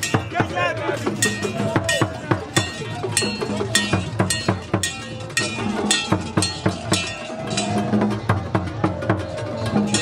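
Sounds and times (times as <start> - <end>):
crowd voices calling: 0.0 - 10.0
hand percussion with ringing metal: 0.0 - 10.0.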